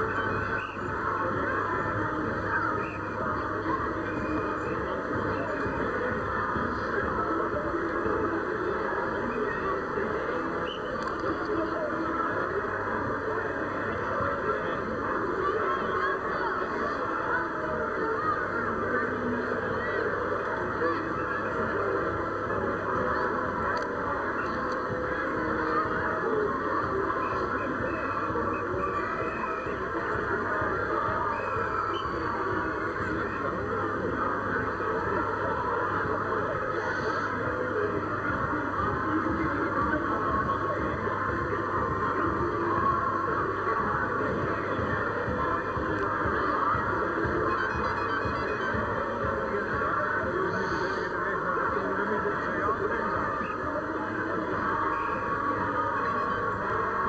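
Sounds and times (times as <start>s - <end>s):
parade crowd noise: 0.0s - 57.0s.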